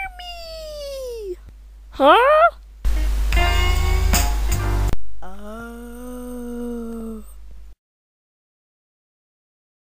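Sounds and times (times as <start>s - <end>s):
low hum: 2.6s - 7.8s.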